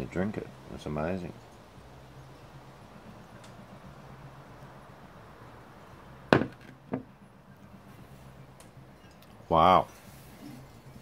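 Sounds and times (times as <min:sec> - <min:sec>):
faint steady hum: 0:00.0 - 0:11.0
glass knocking on table: 0:06.3 - 0:07.1.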